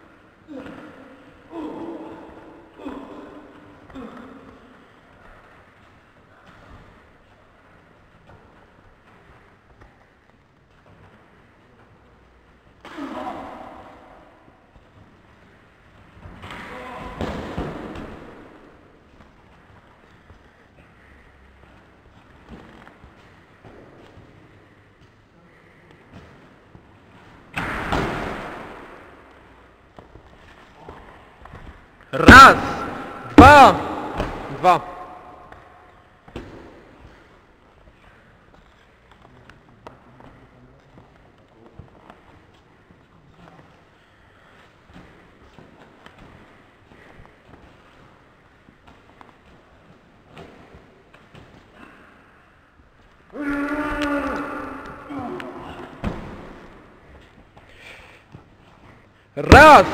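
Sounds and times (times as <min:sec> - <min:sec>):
person grunting: 0:00.5 - 0:04.4, 0:32.2 - 0:35.5, 0:53.4 - 0:56.0.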